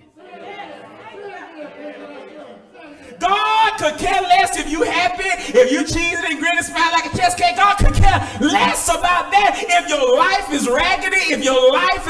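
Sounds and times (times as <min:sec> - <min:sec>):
amplified sermon: 0:02.8 - 0:12.0.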